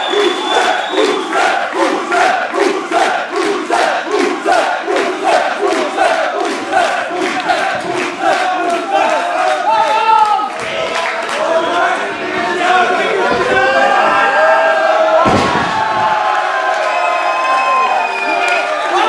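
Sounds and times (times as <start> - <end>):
rhythmic clapping: 0.0 - 13.5
crowd chanting in unison: 0.0 - 17.0.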